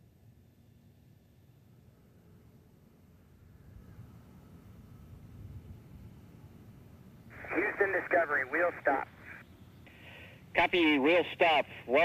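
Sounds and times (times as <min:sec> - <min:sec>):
man talking over tinny radio: 0:07.4 - 0:09.4, 0:10.5 - 0:12.0.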